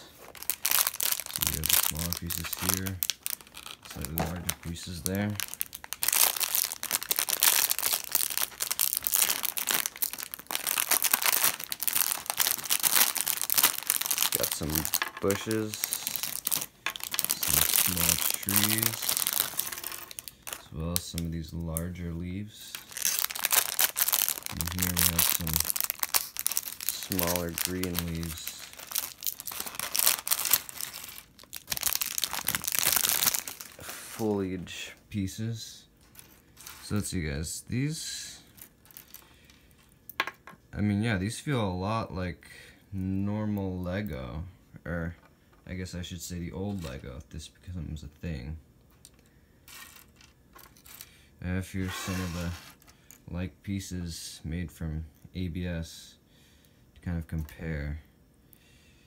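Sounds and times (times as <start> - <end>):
plastic bag crinkling: 0.0 - 34.7, 36.0 - 37.3, 38.1 - 40.0, 49.0 - 51.1, 51.8 - 53.2
small plastic pieces pouring: 0.4 - 21.1, 22.8 - 33.8.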